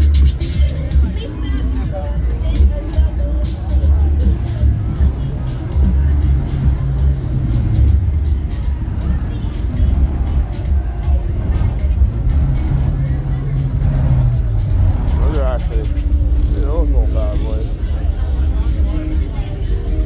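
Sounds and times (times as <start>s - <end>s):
bass-heavy music through car audio: 0.0s - 20.0s.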